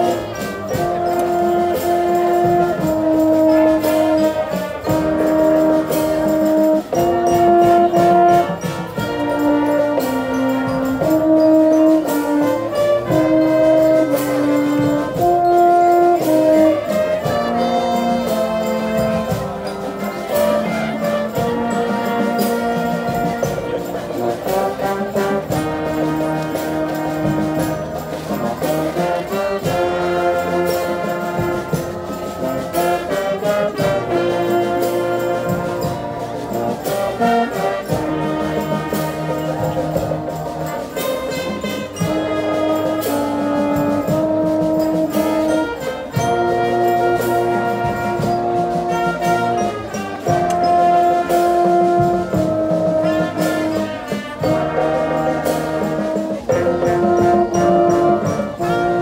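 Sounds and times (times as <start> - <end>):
brass section melody: 0.0 - 59.0
percussion hits: 0.0 - 59.0.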